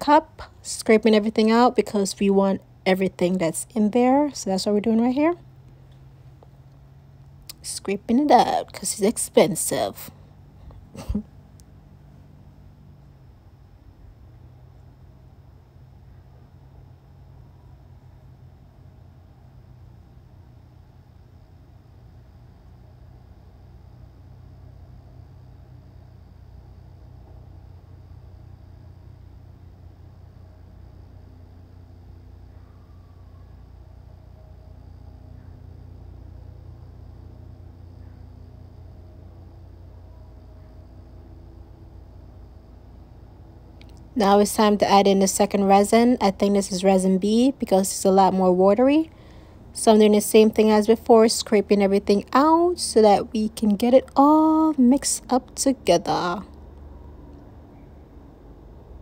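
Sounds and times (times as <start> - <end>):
faint low hum: 0.0 - 59.0.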